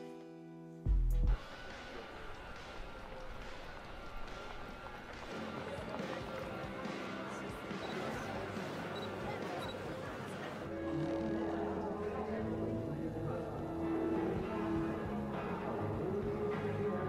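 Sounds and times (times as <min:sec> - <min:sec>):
faint voices: 0:01.5 - 0:17.0.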